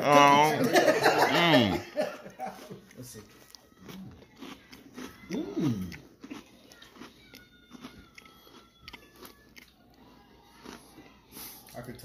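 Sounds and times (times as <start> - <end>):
wafer cookies crunching: 1.4 - 12.0.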